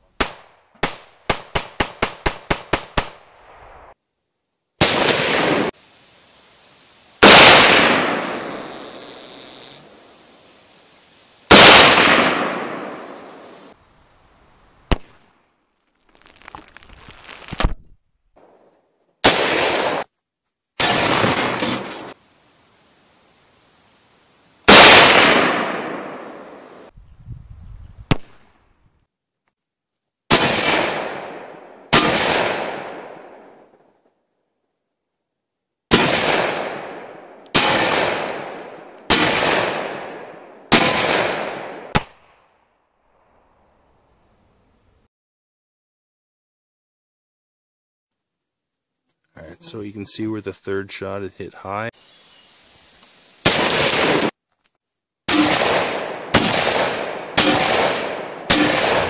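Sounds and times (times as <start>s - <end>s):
gunshots with echo: 24.7s - 26.5s, 55.3s - 59.0s.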